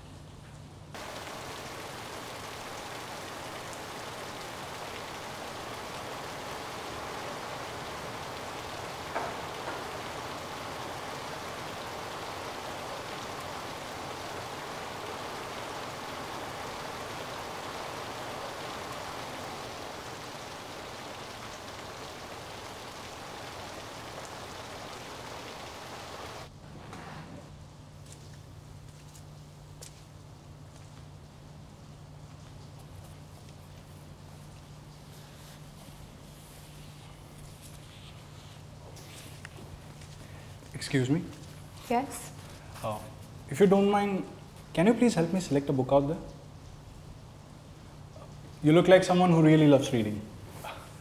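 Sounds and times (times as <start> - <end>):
heavy rain: 1.0 - 26.5, 31.2 - 51.0.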